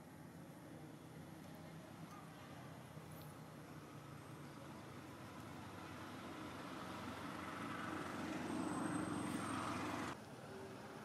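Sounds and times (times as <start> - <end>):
vehicle engine rumble: 0.0 - 11.0.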